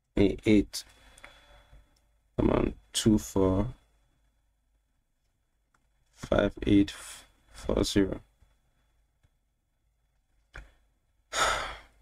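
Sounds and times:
faint breath: 0.9 - 2.0
man sighing: 11.3 - 12.0.

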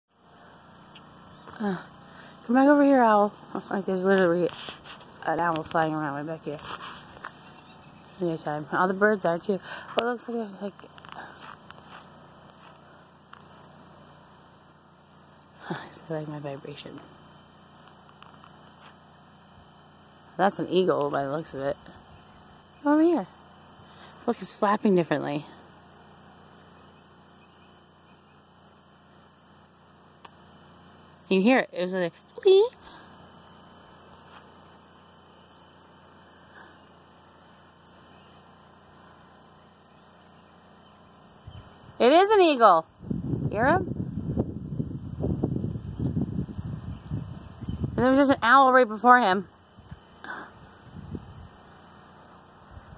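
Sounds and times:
faint outdoor background noise: 0.1 - 52.9.

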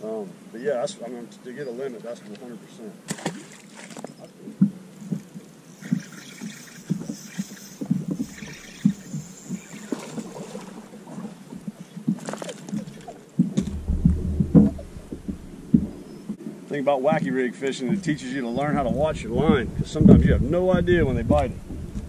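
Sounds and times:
waves slapping against boat hull: 3.1 - 16.4
deep rumble: 13.6 - 16.4.

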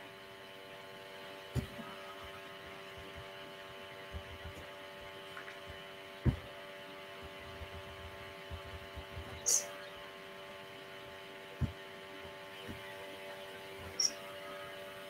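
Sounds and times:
faint electrical hum: 0.0 - 15.0
low thumps: 5.6 - 6.6.

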